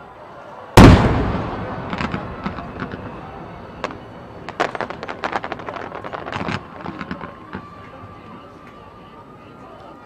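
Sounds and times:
firework shell bursting: 3.8s - 7.7s.

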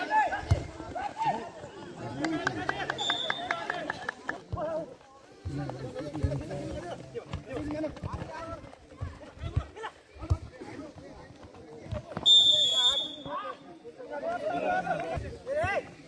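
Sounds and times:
ball kick: 0.4s - 1.0s, 5.4s - 13.3s
referee's whistle blast: 12.2s - 13.3s.

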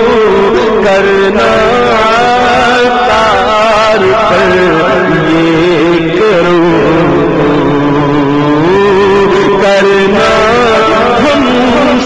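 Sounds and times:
man singing sustained note: 0.0s - 12.0s.

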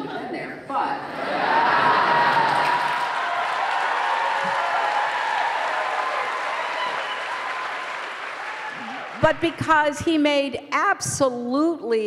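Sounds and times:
audience applauding: 1.3s - 9.6s.

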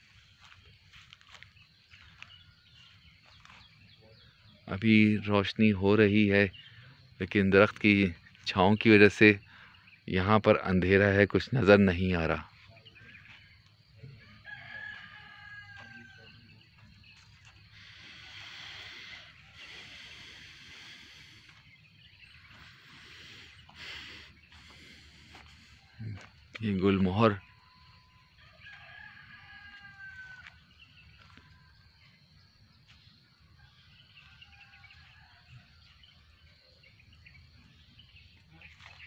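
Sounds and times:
rooster crowing: 14.2s - 16.6s, 27.7s - 31.8s.

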